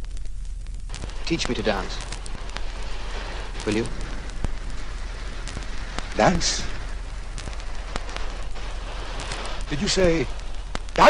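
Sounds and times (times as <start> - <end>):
old film hiss and crackle: 0.0 - 11.0
man speaking: 1.3 - 2.0, 6.2 - 6.8, 9.7 - 10.3.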